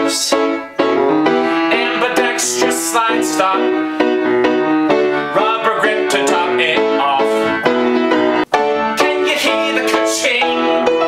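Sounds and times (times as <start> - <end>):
upright piano playing: 0.0 - 11.0.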